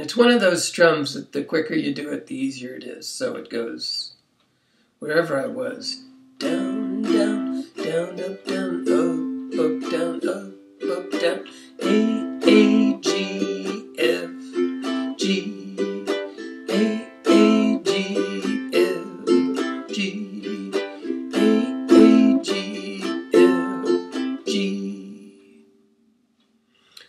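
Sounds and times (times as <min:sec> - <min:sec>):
ukulele strumming: 0:05.6 - 0:25.6.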